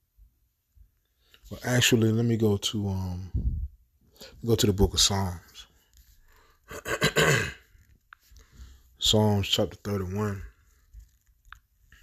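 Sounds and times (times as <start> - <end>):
man clearing his throat: 6.7 - 7.7.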